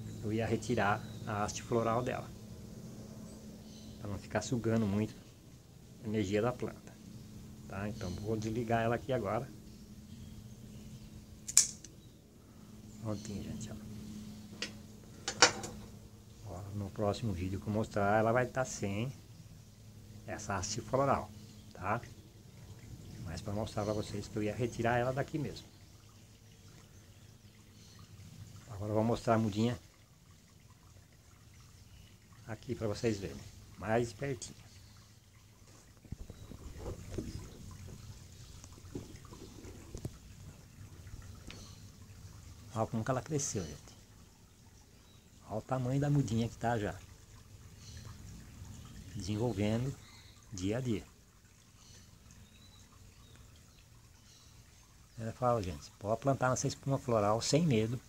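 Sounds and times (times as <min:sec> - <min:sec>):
faint low hum: 0:00.0 - 0:58.0
sharp click: 0:11.5 - 0:12.0
metal shears clattering on stone: 0:15.3 - 0:15.8.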